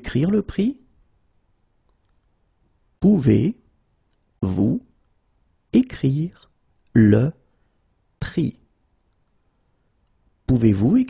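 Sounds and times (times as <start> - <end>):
faint clicks: 1.8 - 2.4, 4.0 - 4.4, 8.9 - 10.2.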